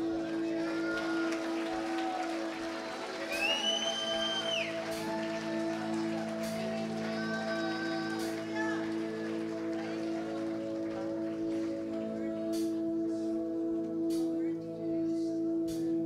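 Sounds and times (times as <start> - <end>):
sustained band chord: 0.0 - 16.0
voices singing: 0.0 - 16.0.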